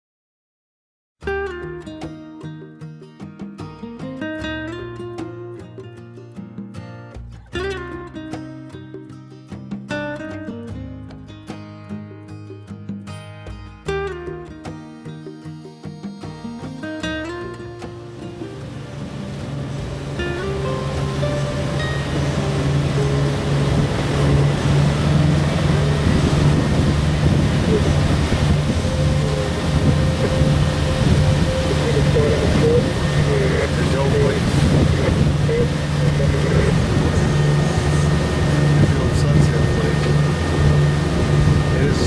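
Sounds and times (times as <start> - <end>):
guitar music: 1.2 - 42.0
water rushing past hull: 18.0 - 42.0
boat diesel engine running: 18.3 - 42.0
wind on microphone: 18.6 - 42.0.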